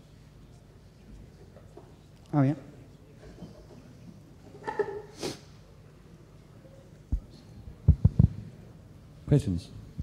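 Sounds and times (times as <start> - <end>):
dull thumps on microphone: 7.9 - 8.4.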